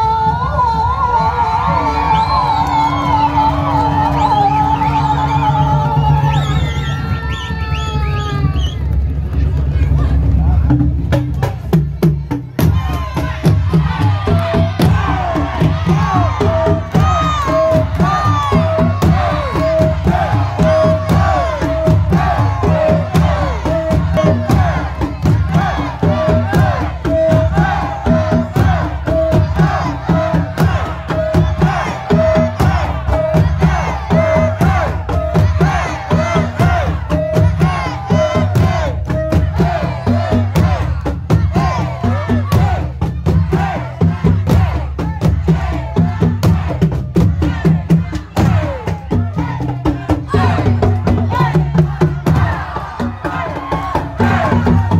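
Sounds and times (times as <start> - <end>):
drum ensemble pounding: 0.0 - 54.9
people shouting and chanting: 0.0 - 54.9.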